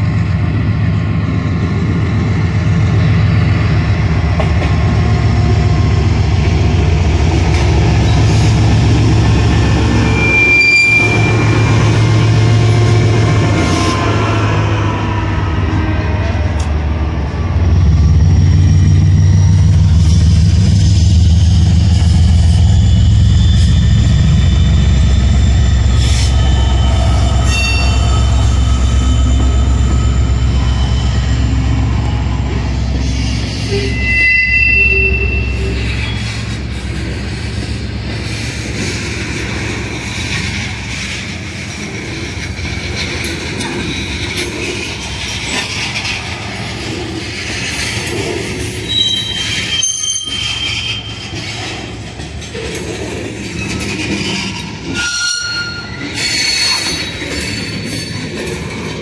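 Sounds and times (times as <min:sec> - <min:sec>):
locomotive engines rumbling: 0:00.0 - 0:59.0
wheel squeals: 0:07.4 - 0:15.8, 0:17.8 - 0:36.8, 0:47.4 - 0:59.0.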